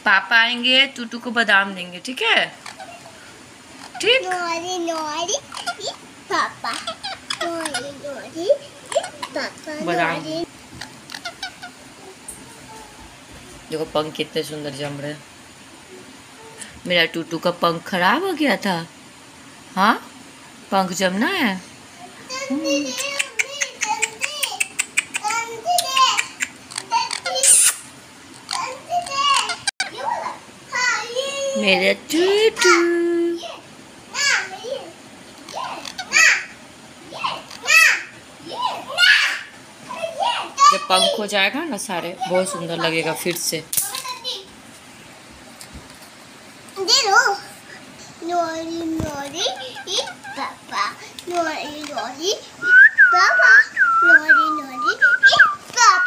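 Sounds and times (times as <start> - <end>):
parakeet chirping: 2.2 - 11.9, 23.0 - 30.0, 35.4 - 36.6, 49.3 - 50.6
parrot squawky calls: 2.6 - 11.9, 23.0 - 30.0, 35.4 - 36.6, 49.4 - 50.6.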